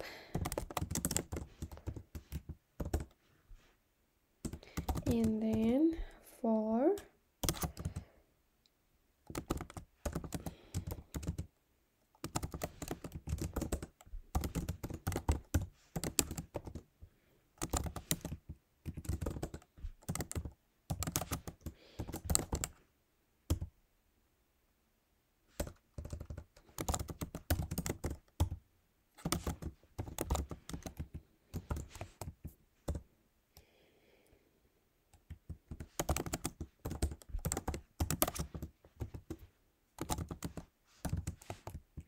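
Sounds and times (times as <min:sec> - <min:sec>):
typing on computer keyboard: 0:00.0 - 0:03.2, 0:04.4 - 0:05.8, 0:07.0 - 0:08.1, 0:09.2 - 0:11.5, 0:12.1 - 0:16.8, 0:17.6 - 0:22.8, 0:23.5 - 0:23.7, 0:25.6 - 0:28.6, 0:29.2 - 0:33.0, 0:35.1 - 0:42.0.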